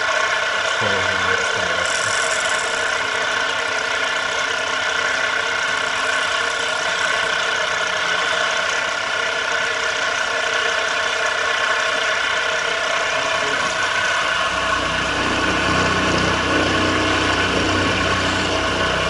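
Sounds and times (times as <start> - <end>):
end mill cutting metal: 0.0 - 19.0
milling machine whine: 0.0 - 19.0.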